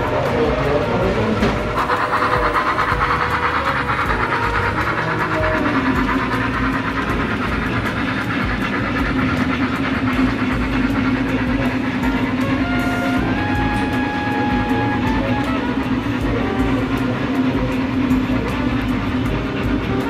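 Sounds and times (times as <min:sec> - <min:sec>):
model train wheels clattering: 0:00.0 - 0:20.0.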